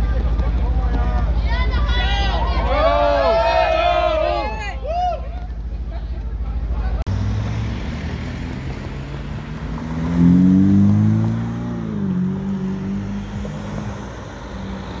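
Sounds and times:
sports car driving past: 0:07.1 - 0:15.0.

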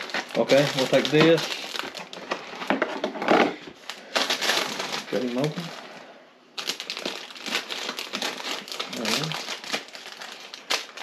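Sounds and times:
dry pasta in bag: 0:00.0 - 0:02.2, 0:04.0 - 0:05.9, 0:06.6 - 0:11.0
plastic bags crinkling: 0:00.0 - 0:11.0.

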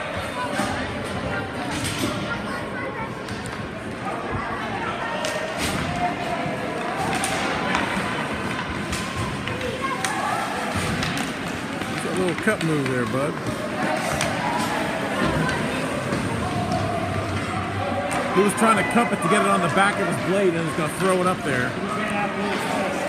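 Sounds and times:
skates on ice: 0:05.3 - 0:23.0
hockey sticks and puck knocking: 0:06.6 - 0:17.5.

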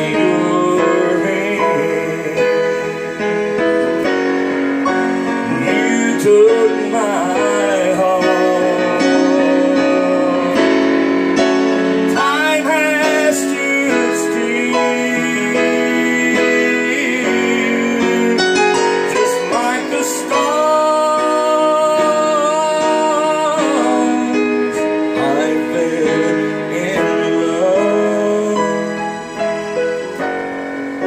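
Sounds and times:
slow country song on digital piano: 0:00.0 - 0:31.0.

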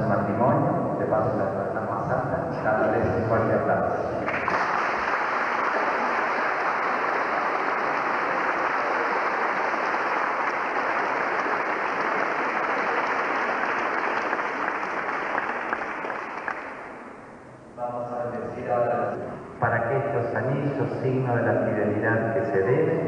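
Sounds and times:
congregation applauding: 0:04.2 - 0:17.1.

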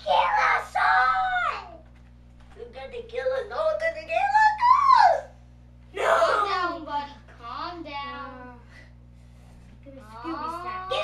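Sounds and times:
child wailing: 0:05.9 - 0:06.6.

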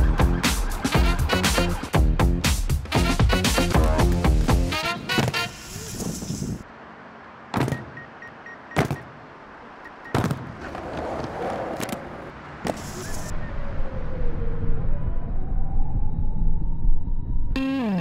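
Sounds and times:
road traffic hum: 0:02.8 - 0:14.2.

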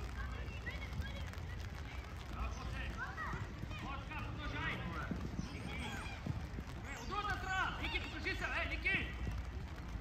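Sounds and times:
footsteps running on artificial turf: 0:00.0 - 0:10.0
children shouting: 0:05.4 - 0:08.6.

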